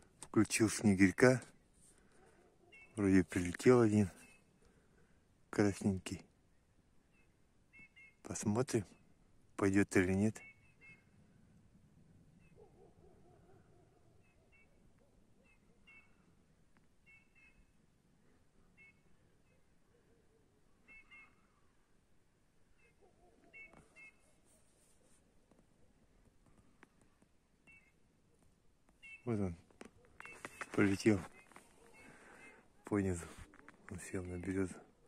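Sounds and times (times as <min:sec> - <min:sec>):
soft whistled bird calls: 0:02.7 - 0:03.0, 0:07.1 - 0:08.3, 0:10.4 - 0:11.2, 0:14.2 - 0:16.4, 0:17.0 - 0:17.8, 0:18.6 - 0:21.8, 0:22.8 - 0:24.4, 0:30.2 - 0:34.1.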